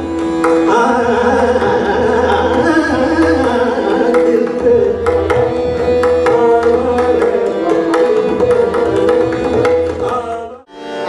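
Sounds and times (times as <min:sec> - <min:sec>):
tabla drumming: 0:00.0 - 0:10.7
harmonium notes: 0:00.0 - 0:11.0
tanpura drone: 0:00.0 - 0:11.0.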